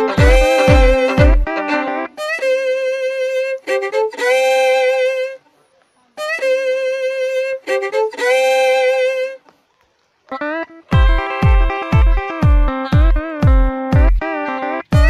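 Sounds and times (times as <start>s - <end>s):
violin melody: 0.0s - 5.4s, 6.2s - 9.4s, 10.4s - 15.0s.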